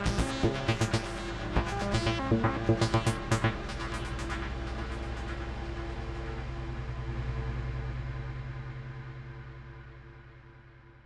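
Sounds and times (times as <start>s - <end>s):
low pulsing synth drone: 0.0s - 11.0s.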